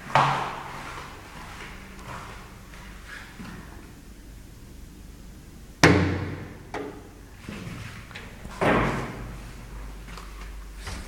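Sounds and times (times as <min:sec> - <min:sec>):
elevator door slamming: 0:05.8 - 0:07.2, 0:08.3 - 0:09.4, 0:10.8 - 0:11.0.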